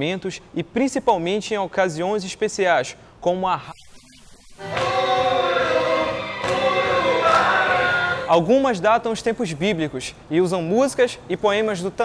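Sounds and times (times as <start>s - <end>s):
choir singing held notes: 4.6s - 8.4s.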